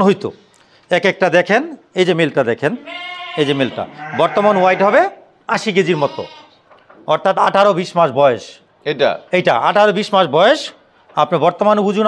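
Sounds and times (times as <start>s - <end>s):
sheep bleating: 2.8s - 5.0s, 5.8s - 6.6s.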